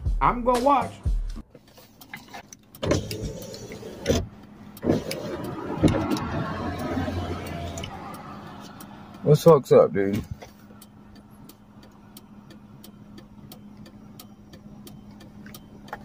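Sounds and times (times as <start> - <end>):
car engine hum: 1.2 - 16.0
passing vehicle noise: 1.7 - 16.0.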